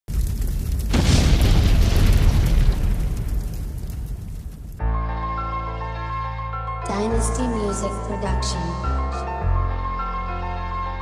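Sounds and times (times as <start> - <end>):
deep rumbling boom: 0.1 - 5.1.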